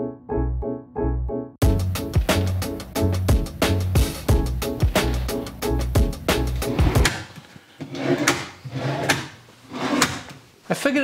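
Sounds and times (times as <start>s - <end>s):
metal drawer sliding: 6.4s - 10.4s
drawer click: 7.9s - 10.4s.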